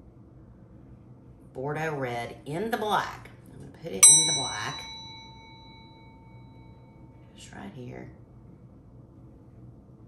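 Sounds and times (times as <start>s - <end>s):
bell-like notification ding: 4.0s - 6.5s.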